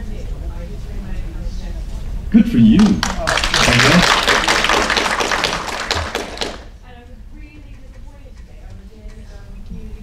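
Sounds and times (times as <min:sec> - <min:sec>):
audience applauding: 0:02.7 - 0:06.7.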